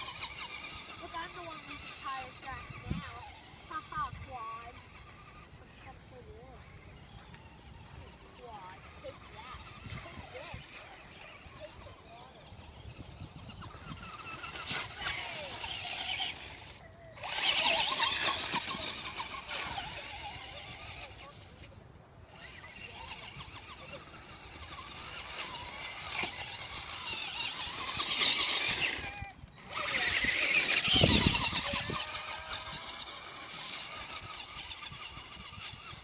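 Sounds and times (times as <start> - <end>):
toy truck motor whining: 0.0 - 36.0.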